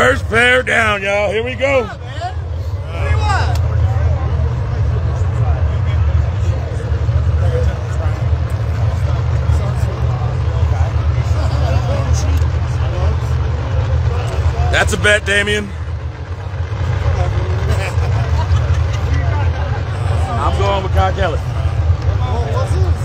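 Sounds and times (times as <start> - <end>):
crowd chatter: 0.0 - 23.0
race car engines rumbling: 0.0 - 23.0.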